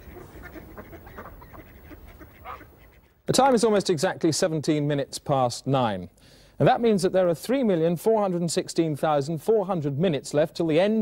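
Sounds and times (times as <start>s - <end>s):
waterfowl calling: 0.0s - 3.2s.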